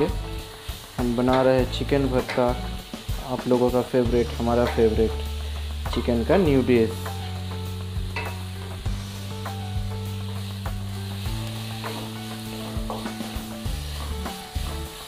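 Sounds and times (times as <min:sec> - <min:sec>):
onions sizzling in oil: 0:00.0 - 0:15.0.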